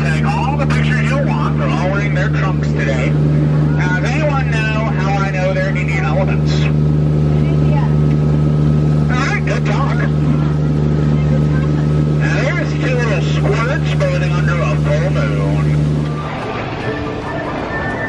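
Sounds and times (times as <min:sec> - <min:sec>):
man talking: 0:00.0 - 0:06.8, 0:09.0 - 0:10.2, 0:12.2 - 0:15.9
boat engine drone: 0:00.0 - 0:18.0.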